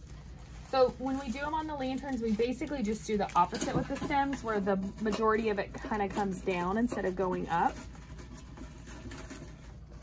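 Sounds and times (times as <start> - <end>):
rustling of artificial flowers: 0.0 - 10.0.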